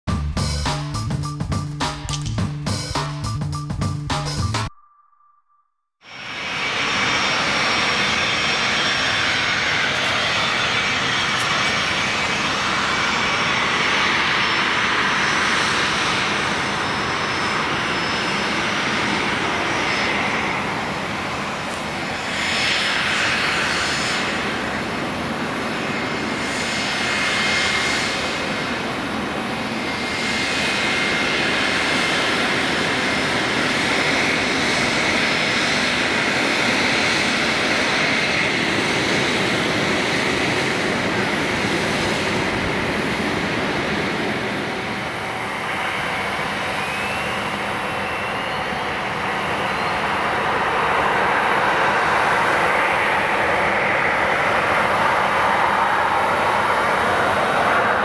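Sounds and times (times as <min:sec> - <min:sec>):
jet engines whining at taxi: 0:06.0 - 0:58.0.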